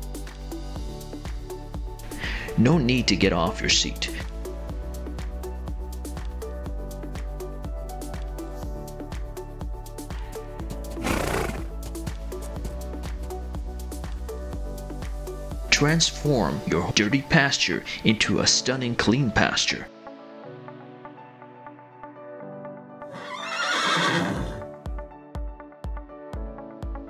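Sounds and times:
background music: 0.0s - 27.0s
horse snorting: 10.8s - 11.7s
horse whinnying: 10.9s - 11.7s, 23.1s - 24.7s.

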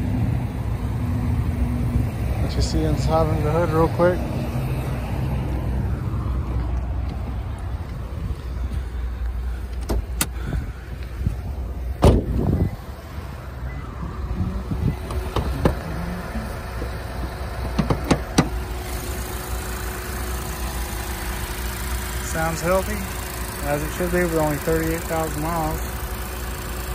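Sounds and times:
car engine idling: 0.0s - 26.9s
hood clunk: 8.6s - 13.0s, 14.7s - 19.2s.

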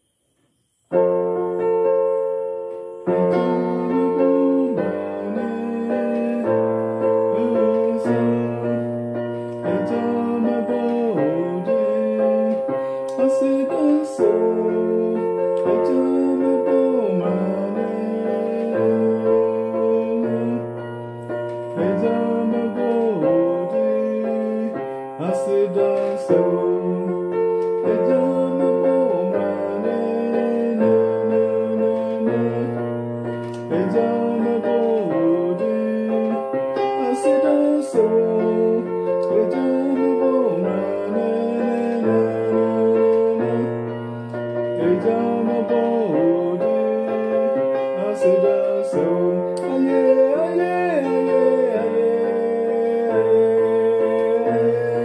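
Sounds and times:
electronic keyboard playing gospel chords: 0.9s - 55.0s.

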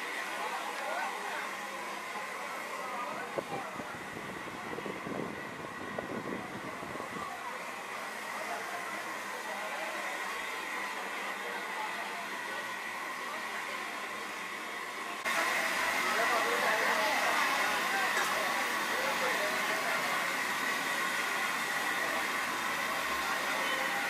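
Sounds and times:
faint voices: 0.0s - 24.0s
steady background noise: 0.0s - 24.0s.

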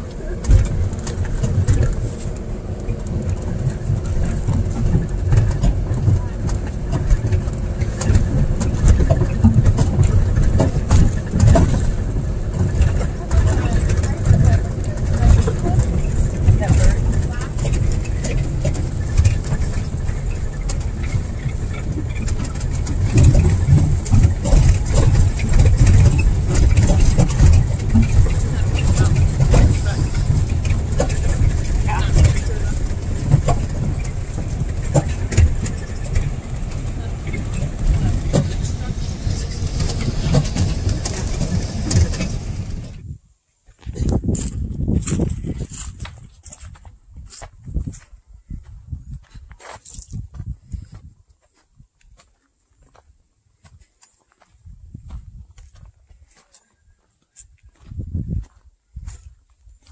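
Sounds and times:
bodywork knocks and rattles: 0.0s - 43.1s
vehicle engine and road rumble: 0.0s - 59.9s.

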